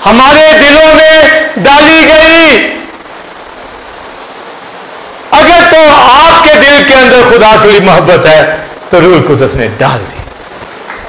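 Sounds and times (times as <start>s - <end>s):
voice: 0.0s - 2.8s, 5.3s - 10.3s
steady background hiss: 0.0s - 11.0s.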